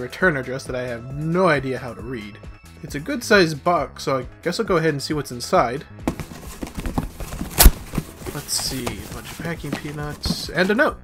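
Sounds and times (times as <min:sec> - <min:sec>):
rustling in packing peanuts: 0:06.1 - 0:10.5.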